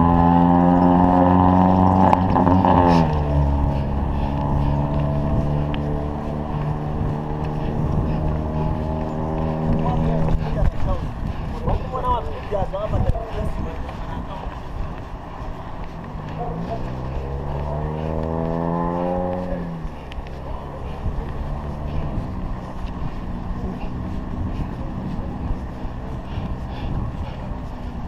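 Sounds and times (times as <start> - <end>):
faint engine hum: 0.0 - 28.0
vehicle engine accelerating: 0.0 - 28.0
wind and road rumble: 0.0 - 28.0.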